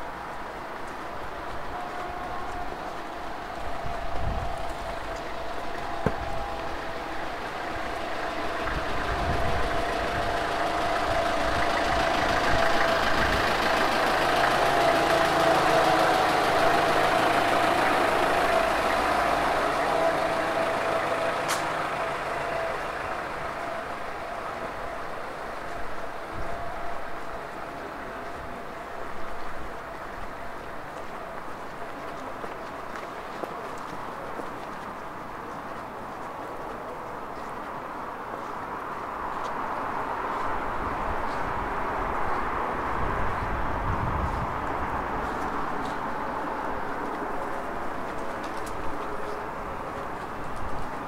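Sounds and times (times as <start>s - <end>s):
street noise: 0.0s - 51.0s
vehicle engine humming: 0.0s - 51.0s.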